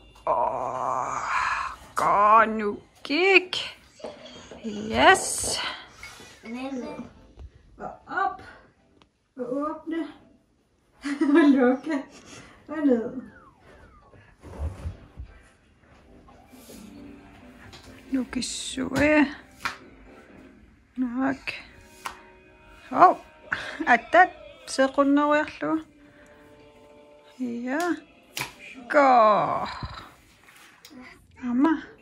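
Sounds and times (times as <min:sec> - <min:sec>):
person groaning with effort: 0:00.3 - 0:01.8.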